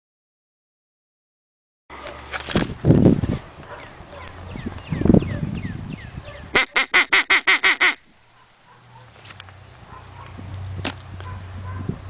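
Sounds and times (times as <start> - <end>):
loud quacks: 6.6 - 8.0.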